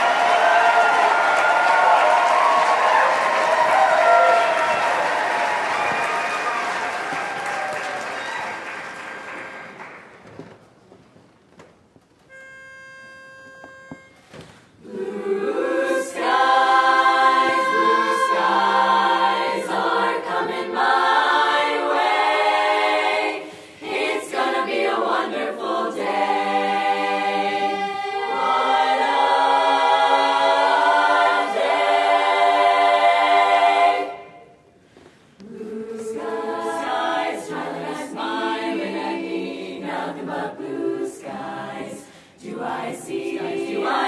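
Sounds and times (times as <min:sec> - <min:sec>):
pitch pipe note: 0:12.3 - 0:14.5
female choir singing a cappella: 0:14.8 - 0:34.6, 0:35.4 - 0:44.0.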